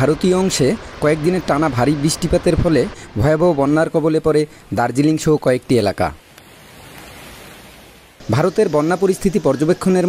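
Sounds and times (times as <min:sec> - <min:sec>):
river rushing in flood: 0:00.0 - 0:10.0.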